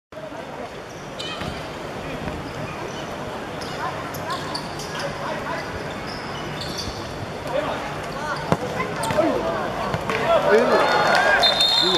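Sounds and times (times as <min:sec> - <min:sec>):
players shouting and cheering: 0:08.4 - 0:11.9.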